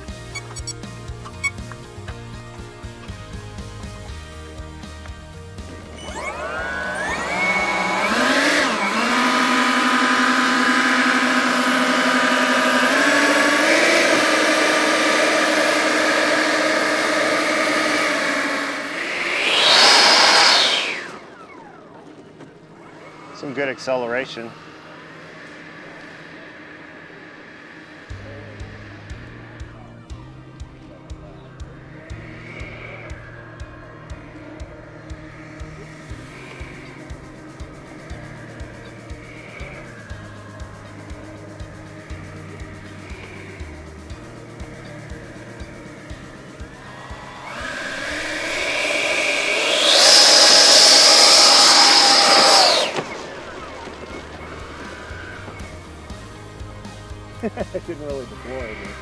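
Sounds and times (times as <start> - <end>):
music with steady beat and bass: 0.0 - 9.6, 28.1 - 49.0, 53.2 - 59.0
electric ducted fans whining: 0.0 - 59.0.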